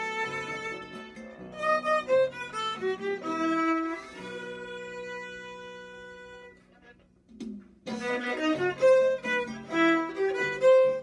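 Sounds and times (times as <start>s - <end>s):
solo violin bowed: 0.0s - 7.0s, 7.9s - 11.0s.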